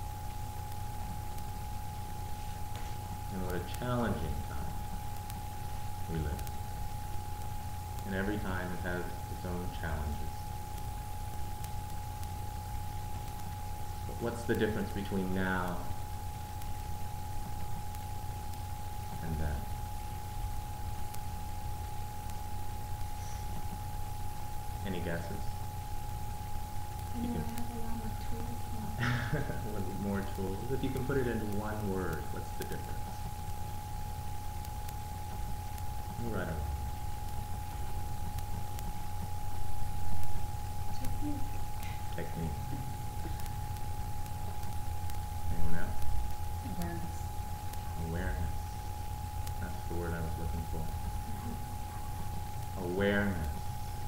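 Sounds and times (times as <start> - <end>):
faint hiss: 0.0 - 54.0
low room rumble: 0.0 - 54.0
steady low hum: 0.0 - 54.0
faint ticks: 4.8 - 8.2, 10.4 - 52.8.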